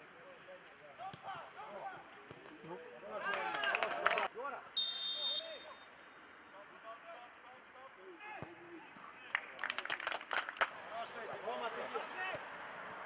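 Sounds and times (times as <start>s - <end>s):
players calling and shouting: 0.3s - 9.4s
hand claps: 9.3s - 10.7s.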